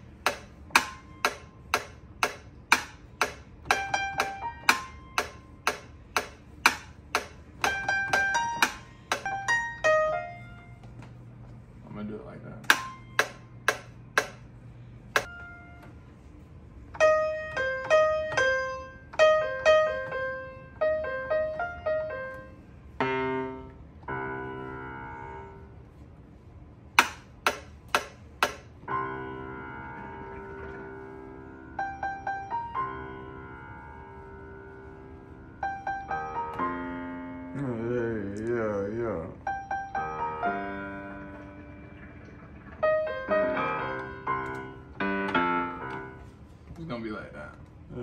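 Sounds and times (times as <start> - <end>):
piano-like keyboard melody: 0.0 - 11.2, 11.9 - 14.4, 15.1 - 26.0, 27.0 - 46.5
held keyboard chords: 0.0 - 46.8.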